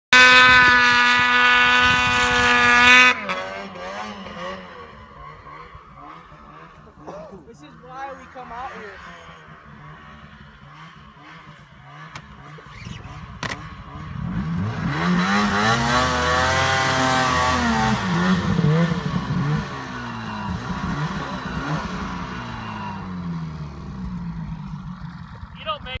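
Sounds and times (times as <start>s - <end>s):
snowmobile engine revving: 0.1s - 26.0s.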